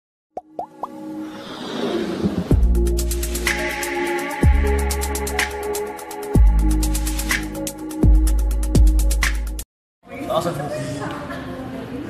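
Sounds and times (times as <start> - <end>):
quick pops rising in pitch: 0.4 - 1.0
intro music: 0.4 - 9.6.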